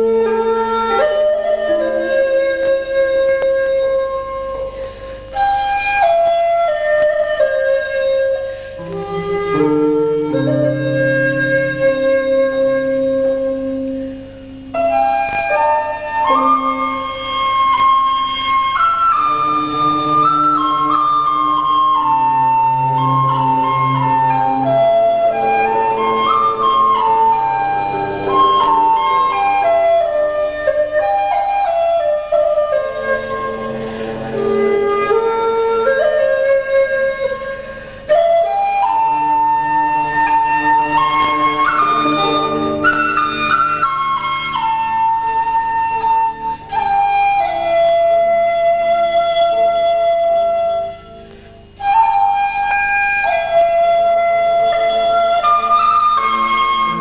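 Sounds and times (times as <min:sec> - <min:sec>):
bamboo flute melody: 0:00.0 - 0:57.0
low accompaniment: 0:00.0 - 0:57.0.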